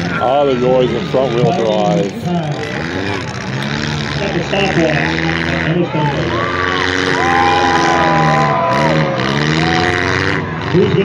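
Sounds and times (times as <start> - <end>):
car engines revving: 0.0 - 11.0
crowd noise: 0.0 - 11.0.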